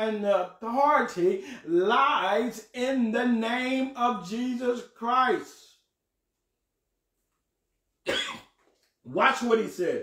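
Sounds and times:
man coughing: 8.1s - 8.5s.

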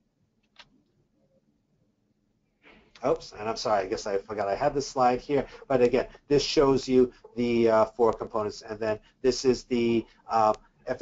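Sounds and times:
soft rush of noise: 2.6s - 11.0s.

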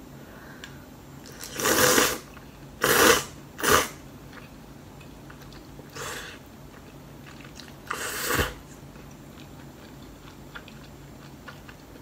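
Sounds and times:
noodles being slurped: 1.2s - 4.5s.

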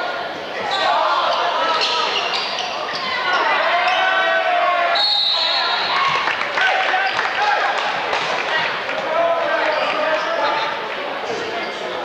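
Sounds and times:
crowd chatter: 0.0s - 12.0s
sneakers squeaking on hardwood: 0.6s - 4.2s.

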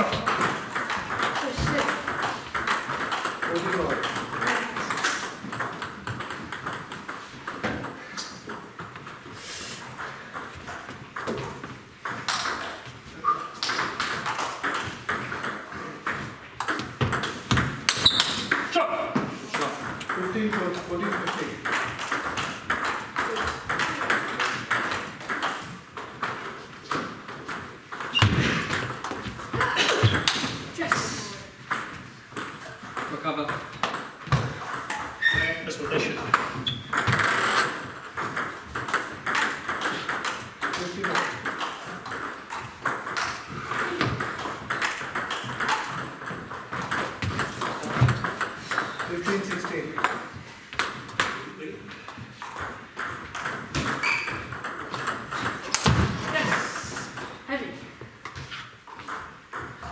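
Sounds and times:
table tennis balls clicking: 0.0s - 59.9s.

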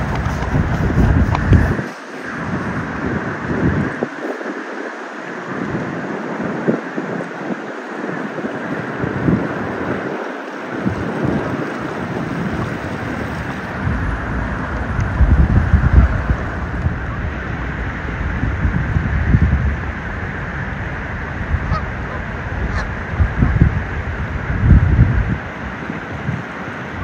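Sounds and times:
steady hiss: 0.0s - 24.6s
wind buffeting microphone: 0.0s - 27.0s.

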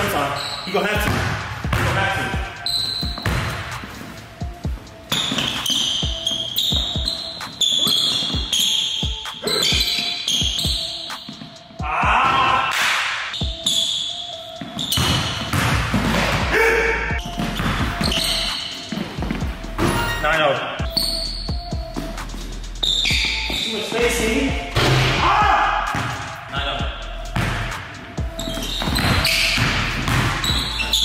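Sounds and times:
music playing: 0.0s - 31.0s
basketball bouncing on hardwood floor: 1.0s - 2.0s, 3.1s - 3.7s, 14.9s - 16.4s, 28.6s - 30.7s.

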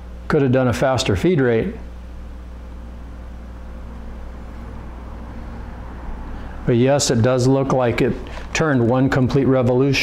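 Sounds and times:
stepper motor humming: 1.9s - 9.0s.

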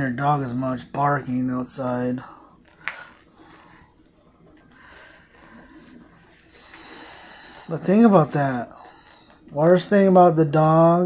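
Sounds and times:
soft breathing: 2.2s - 9.6s.

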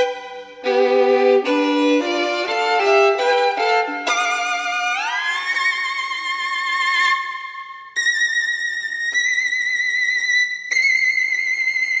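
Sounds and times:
solo violin with vibrato: 0.0s - 12.0s.

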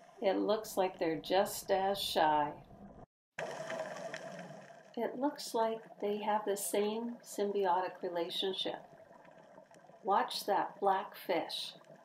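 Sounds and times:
underwater hum: 2.6s - 5.0s, 5.6s - 12.0s.

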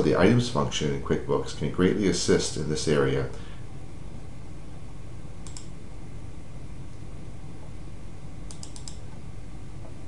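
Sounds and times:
low background hum: 0.0s - 10.0s
keyboard keys clicking: 8.5s - 9.0s.

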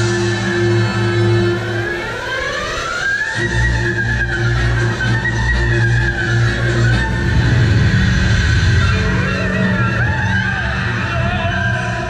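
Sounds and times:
light show music over loudspeakers: 0.0s - 12.0s.

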